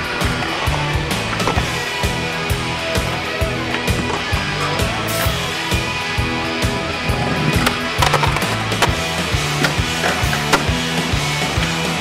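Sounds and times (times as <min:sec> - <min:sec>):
music with bass and beat: 0:00.0 - 0:12.0
skateboard wheels rolling on concrete: 0:00.0 - 0:12.0
skateboard clacks: 0:07.4 - 0:12.0.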